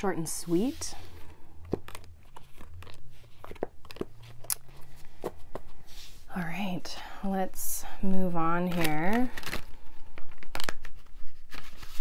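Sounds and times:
cards clicking and rustling: 1.1s - 5.8s, 8.6s - 12.0s.

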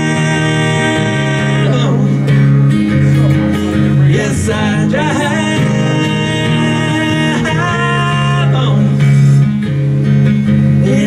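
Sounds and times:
man singing wordlessly: 0.0s - 2.5s, 3.1s - 9.4s, 10.8s - 11.0s
acoustic guitar strumming: 0.0s - 11.0s.

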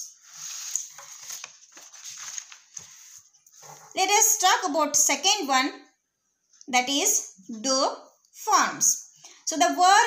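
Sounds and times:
paper rustling: 0.1s - 4.0s.

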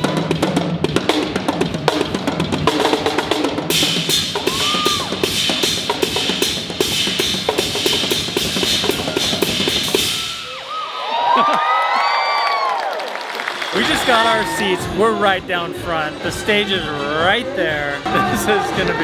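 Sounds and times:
drum kit solo: 0.0s - 10.6s
people whooping and cheering: 4.3s - 5.3s, 8.8s - 15.0s.

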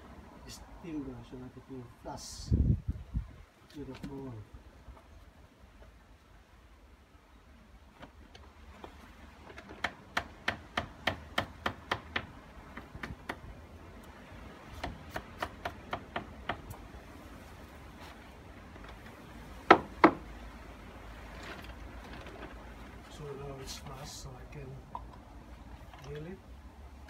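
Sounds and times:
hammer driving nails into timber: 9.6s - 13.4s.

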